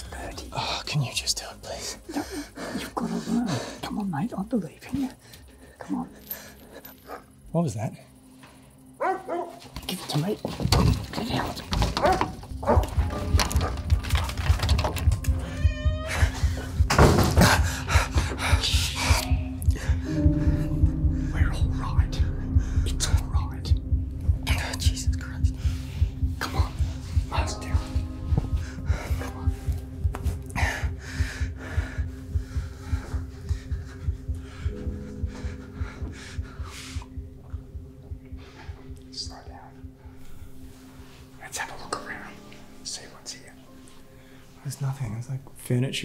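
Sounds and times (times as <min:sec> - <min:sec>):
music with low pulsing beat: 0:11.7 - 0:41.9
cat meowing: 0:15.4 - 0:16.4
droning hum: 0:17.9 - 0:41.3.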